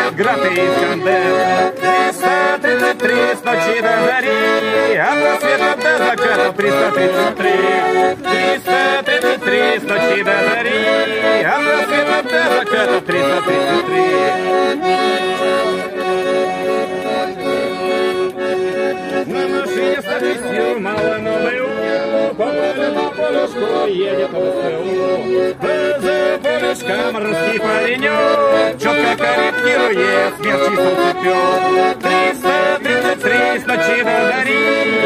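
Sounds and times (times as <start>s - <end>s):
button accordion folk tune: 0.0s - 35.0s.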